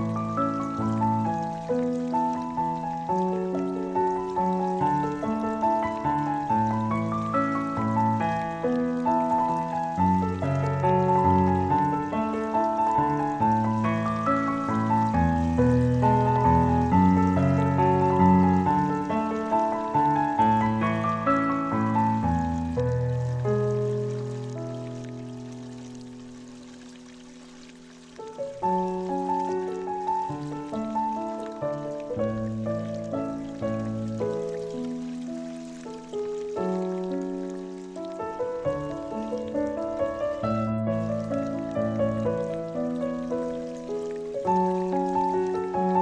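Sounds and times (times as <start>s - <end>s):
solo piano music: 0.0s - 46.0s.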